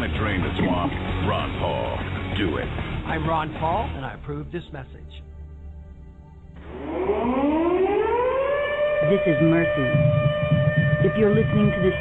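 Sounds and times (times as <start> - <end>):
siren winding up: 6.6 - 12.0.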